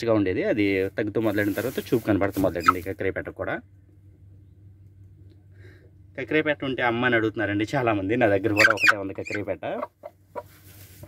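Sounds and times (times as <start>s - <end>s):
rustling of dry grass: 0.5s - 3.1s, 10.0s - 11.0s
hen clucking: 2.4s - 2.9s, 8.4s - 11.0s.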